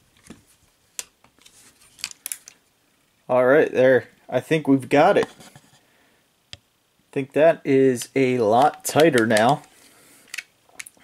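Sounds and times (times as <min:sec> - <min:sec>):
toy parts clicking and scuffing: 0:01.0 - 0:02.6, 0:08.0 - 0:11.0.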